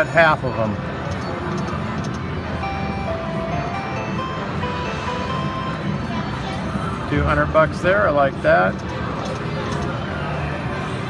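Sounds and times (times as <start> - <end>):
slot machine electronic music: 0.9 - 10.0.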